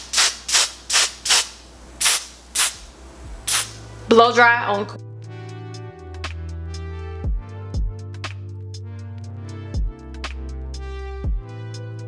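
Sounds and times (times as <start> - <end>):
spray bottle hisses: 0.0 - 2.8, 3.5 - 3.8.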